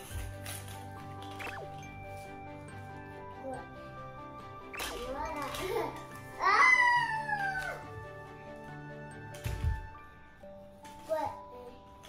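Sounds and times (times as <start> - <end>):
background music: 0.0 - 12.0
child crying high-pitched: 5.2 - 7.9.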